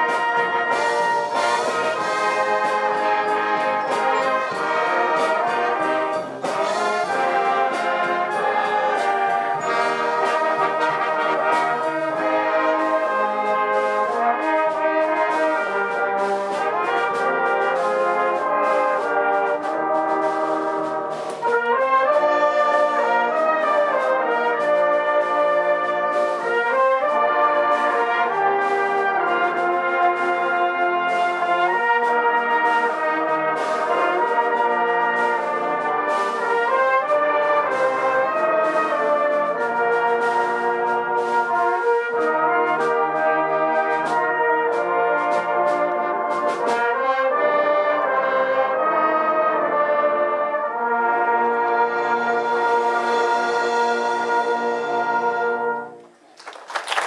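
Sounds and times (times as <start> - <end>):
brass band playing: 0.0 - 57.0
sharp percussion hits: 0.7 - 12.5.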